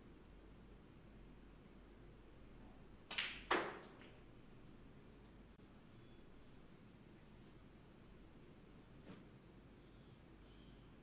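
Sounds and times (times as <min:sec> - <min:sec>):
snooker balls clacking: 0:03.1 - 0:04.2.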